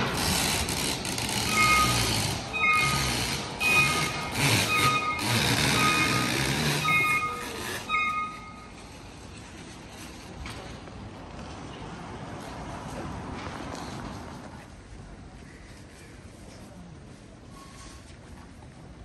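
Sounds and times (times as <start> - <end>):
engine and machinery noise: 0.0 - 19.0
vehicle reversing alarm beeping: 1.4 - 9.0.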